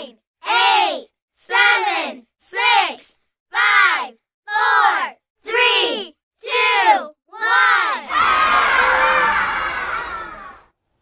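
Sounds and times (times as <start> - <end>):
children cheering and shouting: 7.4 - 10.8.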